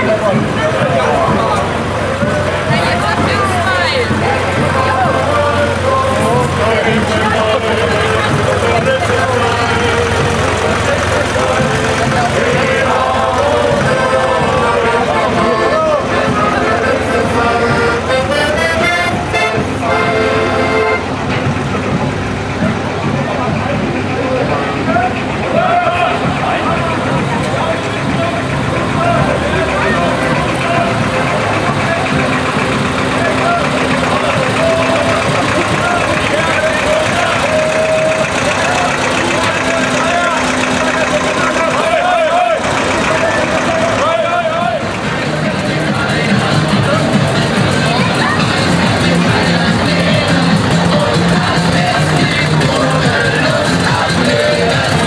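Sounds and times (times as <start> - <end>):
accordion chords: 0.0 - 55.0
tractor engines idling: 0.0 - 55.0
voices and chatter: 0.0 - 55.0.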